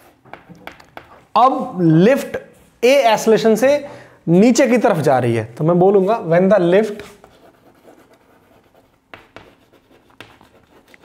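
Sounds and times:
chalk scratching on chalkboard: 0.0 - 0.3, 6.8 - 11.0
chalk tapping: 0.0 - 1.2, 6.8 - 11.0.

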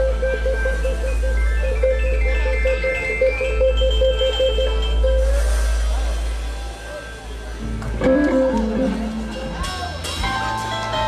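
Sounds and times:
blues-rock band playing live: 0.0 - 6.4, 7.6 - 11.0
steady low bass: 0.0 - 11.0.

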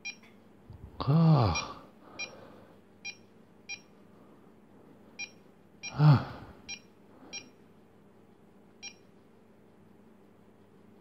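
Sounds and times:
person saying ah: 1.0 - 1.8.

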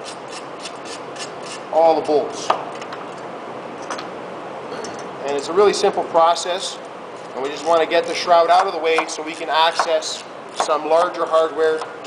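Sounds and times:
workshop room noise: 0.0 - 12.0.

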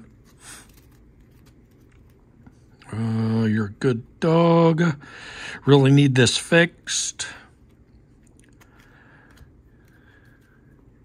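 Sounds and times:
trading cards rustling: 0.0 - 2.8, 7.6 - 11.0.

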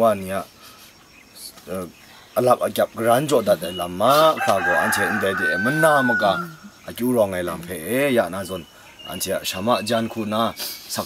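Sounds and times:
man talking: 1.4 - 11.0
rooster crowing: 4.2 - 6.7.

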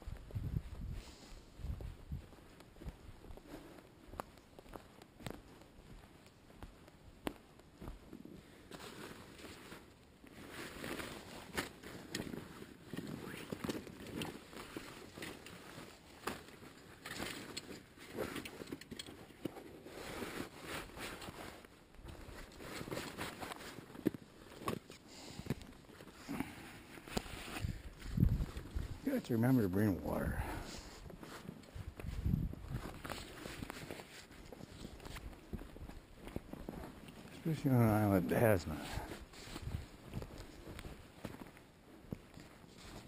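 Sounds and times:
footsteps on needles and twigs: 0.0 - 43.0.

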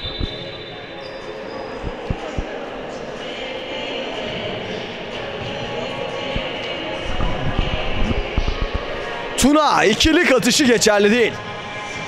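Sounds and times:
reverberant gym hall noise: 0.0 - 12.0.

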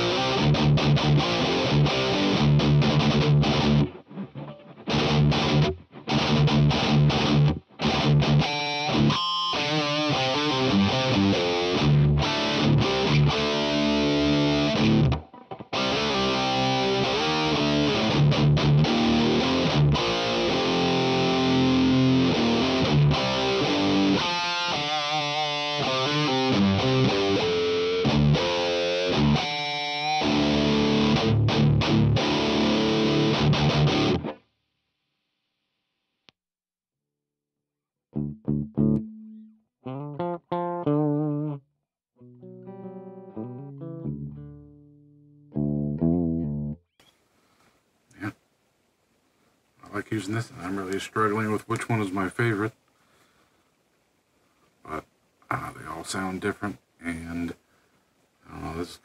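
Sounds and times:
distorted electric guitar: 0.0 - 34.4, 38.2 - 41.6, 42.2 - 46.8.

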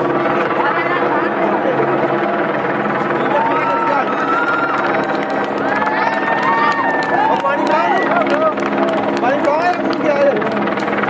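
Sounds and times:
low droning hum: 0.0 - 11.0
people's voices: 0.0 - 11.0.

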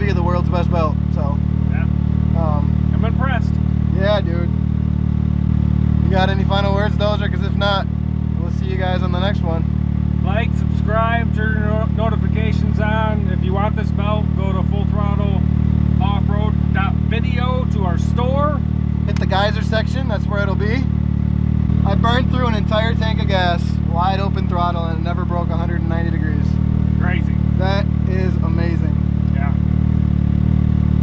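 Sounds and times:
engine idling: 0.0 - 31.0.

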